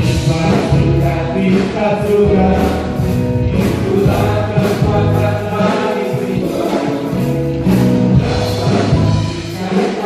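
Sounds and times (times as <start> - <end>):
worship band and singers: 0.0 - 10.0.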